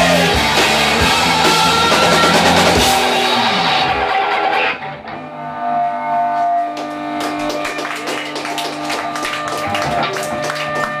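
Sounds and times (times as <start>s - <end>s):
electric guitars ringing chords: 0.0s - 11.0s.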